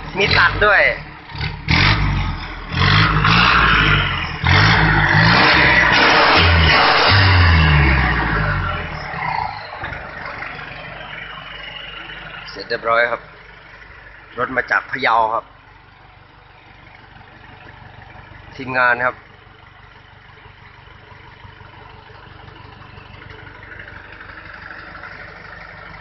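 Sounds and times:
truck diesel engine revving: 0:00.0 - 0:26.0.

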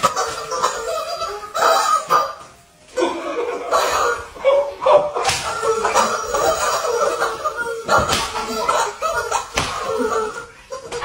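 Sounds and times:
men laughing: 0:00.0 - 0:11.0.

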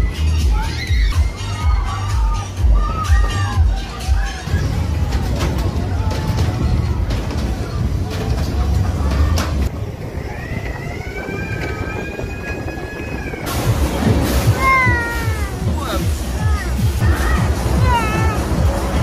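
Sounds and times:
heavy music bass: 0:00.0 - 0:09.3, 0:13.5 - 0:19.0
fairground din: 0:00.0 - 0:19.0
child squealing: 0:14.5 - 0:15.6, 0:16.4 - 0:18.5.

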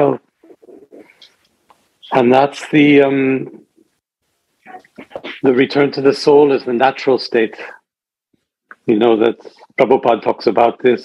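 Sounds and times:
man's voice over video call: 0:00.0 - 0:01.0, 0:02.0 - 0:03.8, 0:04.7 - 0:07.9, 0:08.7 - 0:11.0.

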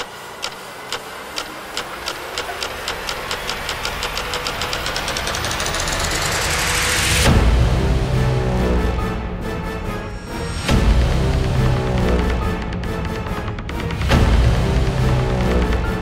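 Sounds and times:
ticking pulse riser: 0:00.0 - 0:09.1, 0:10.2 - 0:16.0.

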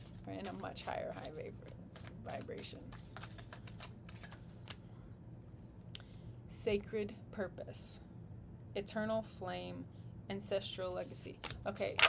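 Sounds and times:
cards being shuffled: 0:00.0 - 0:04.8, 0:11.0 - 0:12.0.

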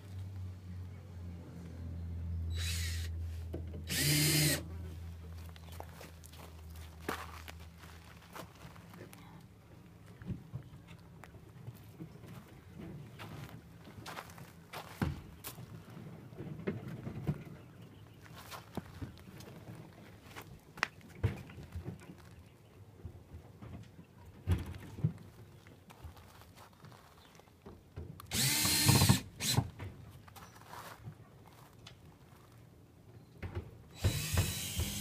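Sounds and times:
footsteps crunching on pebbles: 0:05.3 - 0:09.3, 0:13.2 - 0:16.0, 0:18.0 - 0:22.5, 0:25.2 - 0:27.6, 0:30.1 - 0:32.7.

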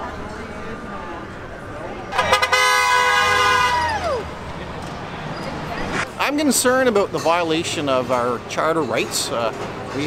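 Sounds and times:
vehicle horn honking: 0:02.1 - 0:03.8.

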